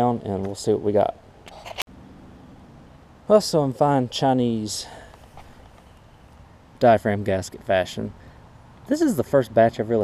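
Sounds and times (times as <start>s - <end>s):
low background noise: 0.0s - 10.0s
faint handling sounds: 4.9s - 6.4s.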